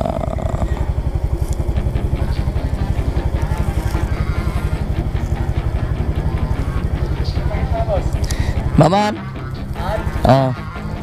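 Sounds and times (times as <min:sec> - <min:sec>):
small motorcycle engine running: 0:00.0 - 0:11.0.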